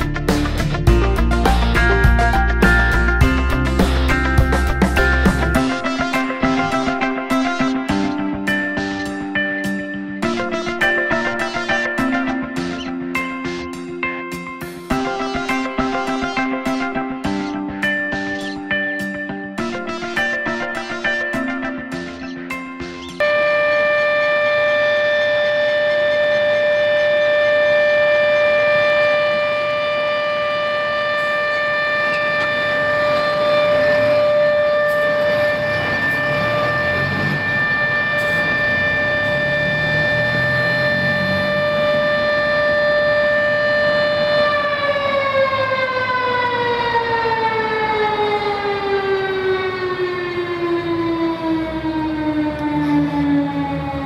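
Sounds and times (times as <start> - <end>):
siren steady high tone: 0.0 - 54.0.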